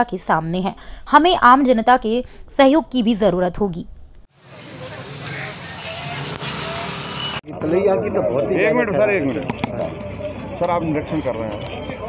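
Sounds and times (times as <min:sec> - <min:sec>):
traffic hiss: 0:04.4 - 0:07.4
moving crowd: 0:04.4 - 0:12.0.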